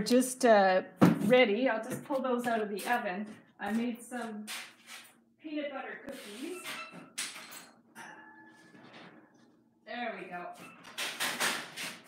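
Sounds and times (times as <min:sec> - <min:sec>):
faint metal ringing: 0:07.9 - 0:09.3.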